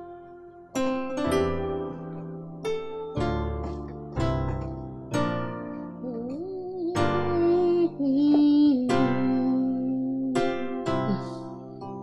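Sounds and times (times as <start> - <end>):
piano chords: 0.0 - 12.0
person humming a melody: 6.0 - 11.6.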